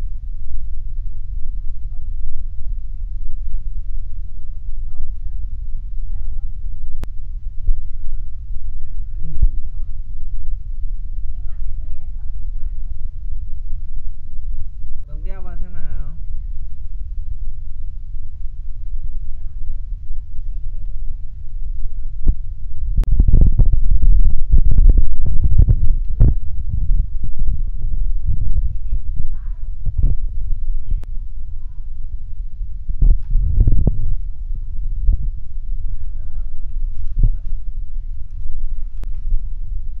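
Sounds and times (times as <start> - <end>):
low background rumble: 0.0 - 40.0.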